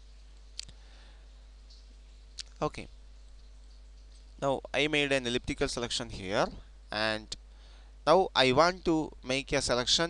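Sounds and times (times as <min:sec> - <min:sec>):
faint hum: 0:00.0 - 0:10.0.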